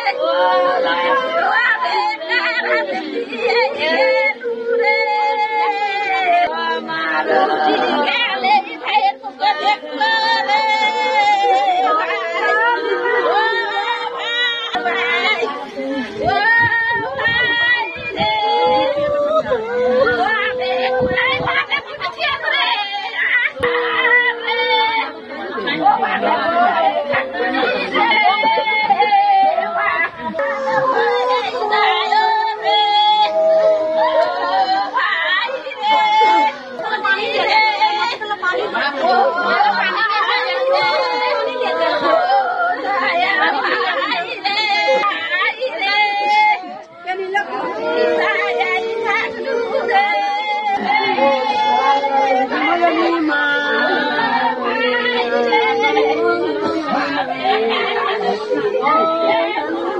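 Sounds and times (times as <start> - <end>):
women wailing and crying: 0.0 - 59.9.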